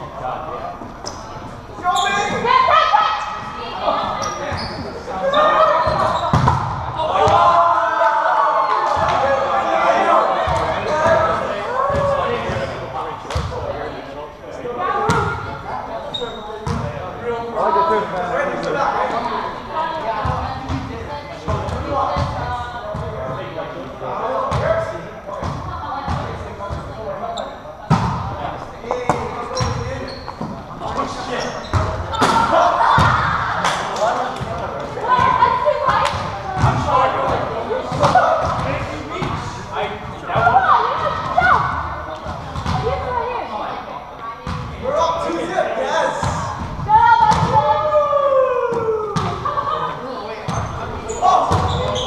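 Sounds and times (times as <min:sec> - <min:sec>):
murmur of players' voices: 0:00.0 - 0:52.0
volleyball hits: 0:05.8 - 0:07.6, 0:31.7 - 0:39.4, 0:46.2 - 0:47.7, 0:51.4 - 0:52.0.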